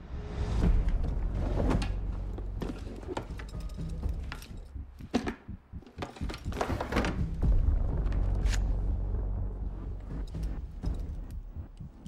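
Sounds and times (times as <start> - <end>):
low steady rumble: 7.3 - 12.0.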